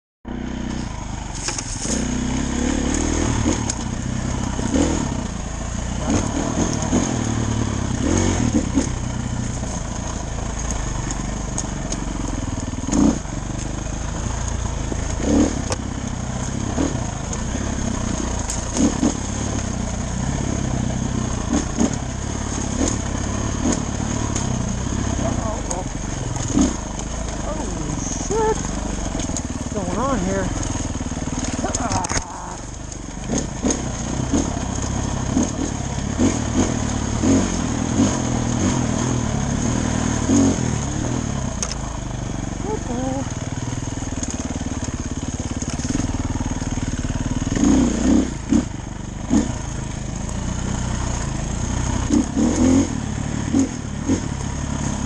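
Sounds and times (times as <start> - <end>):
dirt bike engine revving: 0.3 - 55.0.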